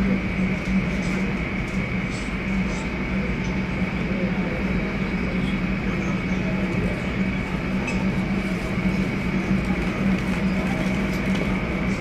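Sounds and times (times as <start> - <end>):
jet engines idling with whine: 0.0 - 12.0.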